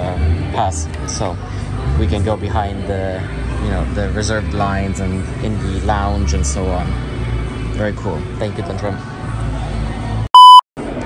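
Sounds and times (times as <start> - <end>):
electronic censor bleep: 10.3 - 10.6.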